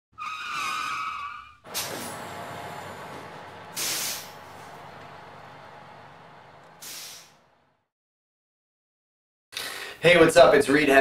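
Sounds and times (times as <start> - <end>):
tyre screech: 0.2 - 2.2
burst of hissing noise: 1.7 - 2.2, 3.7 - 5.0, 6.8 - 7.4
loud burst of hiss: 1.7 - 5.4, 6.8 - 7.4.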